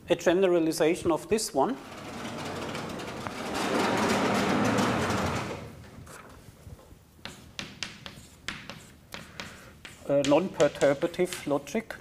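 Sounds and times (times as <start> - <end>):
blackboard panels rolling rumble: 1.8 - 6.2.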